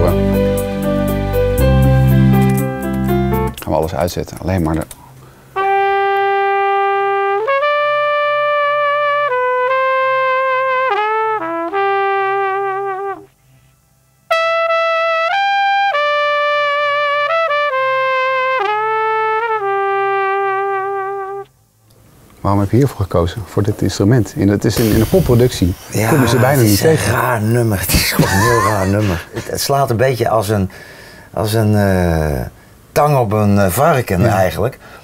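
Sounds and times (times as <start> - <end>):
flugelhorn playing slow melody: 5.6 - 13.4, 14.3 - 21.5.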